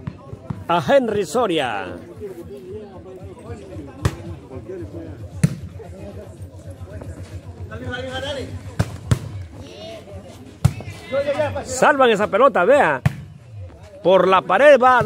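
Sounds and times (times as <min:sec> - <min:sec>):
murmur of spectators' voices: 0:00.0 - 0:15.0.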